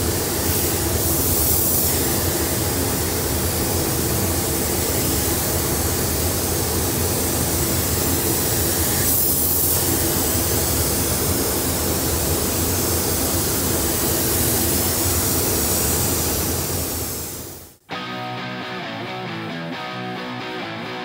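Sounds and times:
paint spray gun hissing: 0.0s - 17.8s
spray booth air flow: 0.0s - 17.8s.

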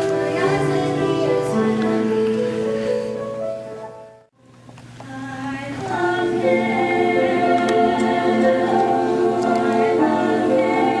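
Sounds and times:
female soloist singing: 0.0s - 2.7s, 5.0s - 11.0s
choir singing held chords: 0.0s - 2.8s, 5.1s - 11.0s.

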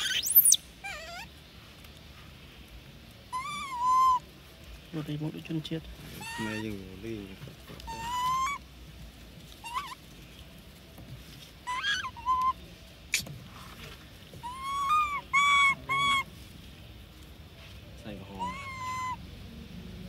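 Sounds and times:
infant monkey coos and squeals: 0.0s - 1.4s, 3.3s - 4.3s, 6.2s - 6.8s, 7.8s - 8.7s, 9.5s - 10.0s, 11.6s - 13.3s, 14.4s - 16.3s, 18.2s - 19.4s.

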